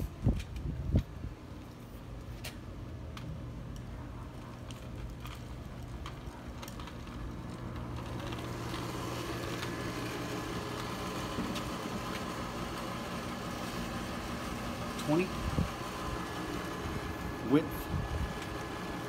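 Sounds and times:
measuring wheel rolling on concrete: 0.0s - 19.0s
steady mechanical hum: 0.0s - 19.0s.

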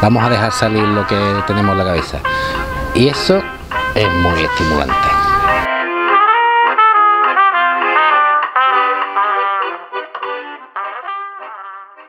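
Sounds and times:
trumpet melody: 0.0s - 12.0s.

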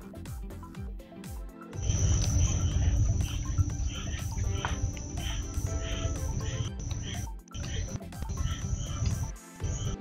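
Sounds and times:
loud low rumble: 1.8s - 7.1s
high-pitched insect drone: 1.8s - 10.0s.

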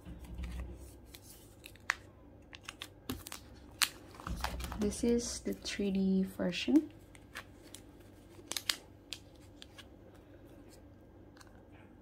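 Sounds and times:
plastic sleeve clicking and crinkling: 0.4s - 5.1s, 7.1s - 9.9s.

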